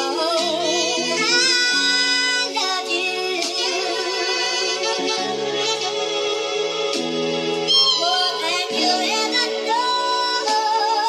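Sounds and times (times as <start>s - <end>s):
hip-hop instrumental beat: 0.0s - 11.0s.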